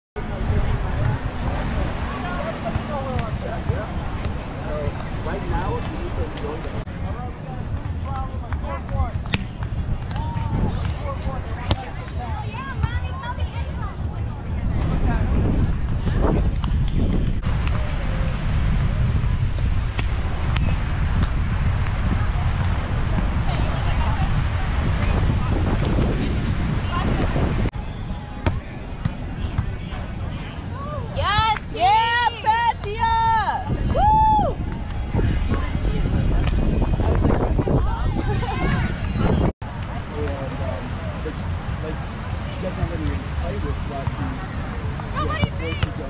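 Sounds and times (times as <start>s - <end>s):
chatter of players and spectators: 0.2s - 46.0s
wind: 0.2s - 46.0s
hand slapping volleyball: 8.5s - 11.0s.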